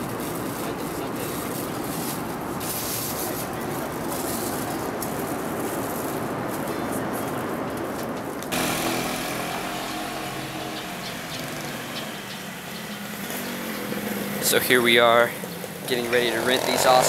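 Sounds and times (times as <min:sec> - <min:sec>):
street sound: 0:00.0 - 0:17.0
motor scooter engine running: 0:08.5 - 0:17.0.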